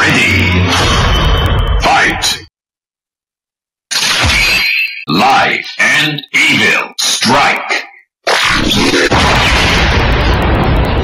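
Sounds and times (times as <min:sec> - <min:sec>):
electronic voice-like sound effects: 0:00.0 - 0:00.7, 0:04.2 - 0:09.2.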